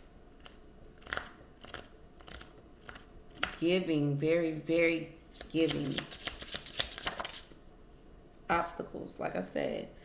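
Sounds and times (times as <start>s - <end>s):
cards being shuffled: 0.4s - 3.6s, 5.3s - 7.5s.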